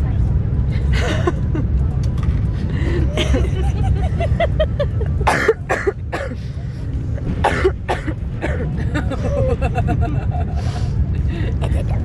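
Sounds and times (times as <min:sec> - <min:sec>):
train carriage rumble: 0:00.0 - 0:12.0
woman laughing: 0:03.1 - 0:05.4, 0:08.7 - 0:10.8
woman coughing: 0:05.2 - 0:06.4, 0:07.4 - 0:08.7.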